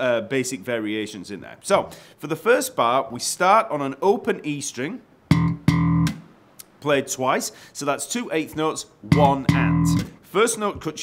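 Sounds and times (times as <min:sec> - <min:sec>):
slapped electric bass notes: 0:05.3 - 0:06.3, 0:09.0 - 0:10.2.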